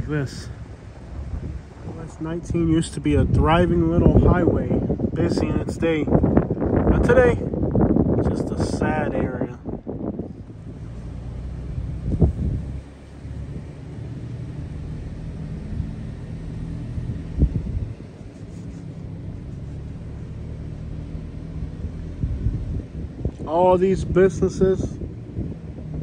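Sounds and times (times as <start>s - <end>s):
car engine and road rumble: 0.0s - 26.0s.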